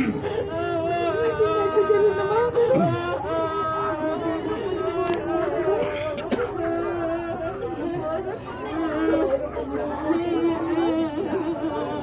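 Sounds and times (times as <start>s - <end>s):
people talking over one another: 0.0s - 12.0s.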